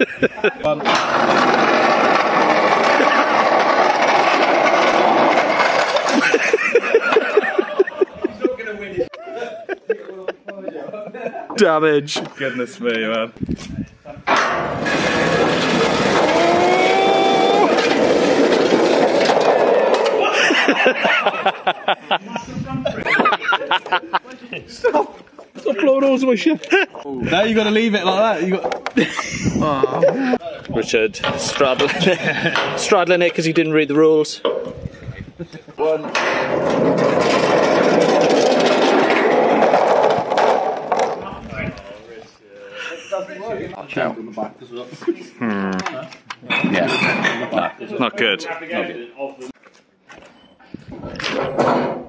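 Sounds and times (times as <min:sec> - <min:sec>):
small wheels rumbling on metal: 0:00.6 - 0:08.1, 0:14.3 - 0:21.5, 0:34.5 - 0:41.8.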